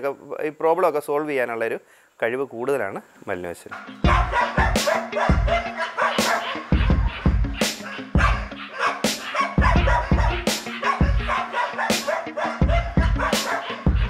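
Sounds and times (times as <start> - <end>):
dogs barking: 3.7 - 14.0
background music with drum beat: 3.8 - 14.0.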